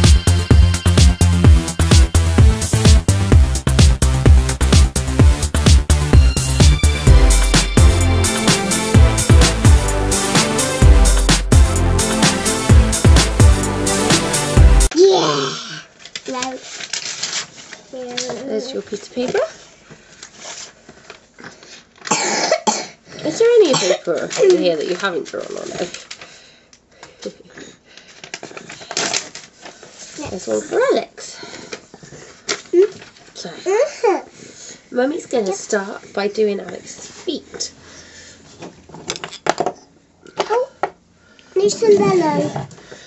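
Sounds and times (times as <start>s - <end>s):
paper rustling on a wooden table: 16.0s - 18.5s.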